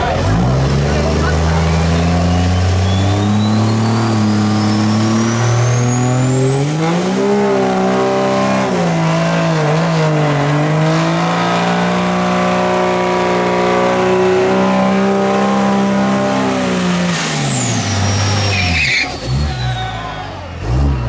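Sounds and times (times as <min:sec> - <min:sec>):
tires spinning: 0:00.0 - 0:21.0
truck engine revving high: 0:00.0 - 0:21.0
thin high whistle: 0:02.3 - 0:05.0.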